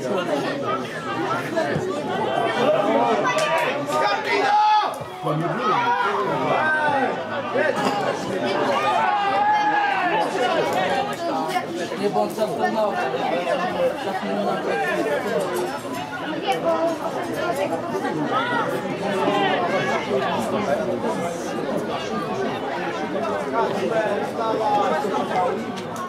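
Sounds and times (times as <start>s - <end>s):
people talking over one another: 0.0s - 26.0s.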